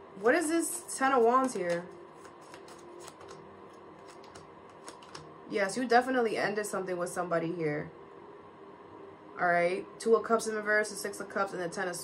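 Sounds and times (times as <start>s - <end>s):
cards being shuffled by hand: 0.6s - 5.3s
cards drawn off a deck: 1.2s - 5.2s.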